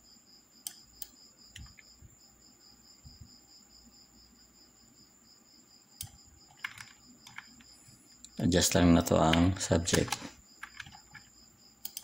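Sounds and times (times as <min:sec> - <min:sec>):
sharp computer clicks: 0:00.6 - 0:01.8, 0:06.0 - 0:12.0.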